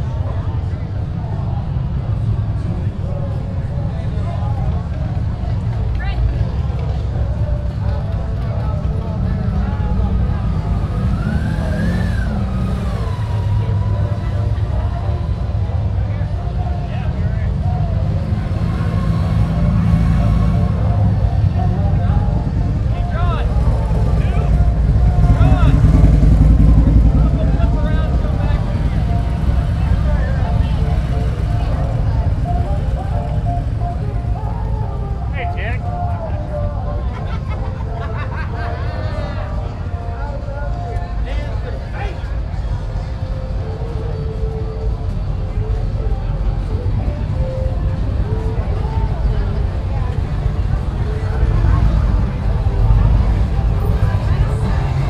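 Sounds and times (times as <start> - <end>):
motorcycle engines rumbling: 0.0 - 55.0
people talking: 0.0 - 55.0.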